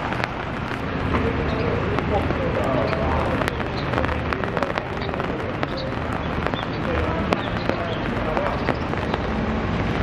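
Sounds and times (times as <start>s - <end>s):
rain hissing on street: 0.0s - 10.0s
raindrops ticking: 0.0s - 10.0s.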